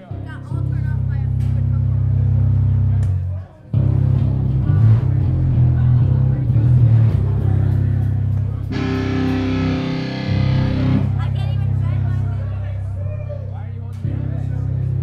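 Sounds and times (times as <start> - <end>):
amplifier low hum: 8.4 - 12.8
distorted electric guitar: 8.6 - 11.6.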